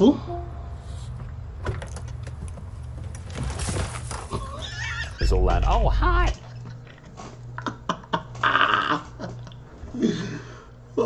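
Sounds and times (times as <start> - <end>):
man falling onto gravel: 3.1 - 4.6
voice: 5.2 - 6.5.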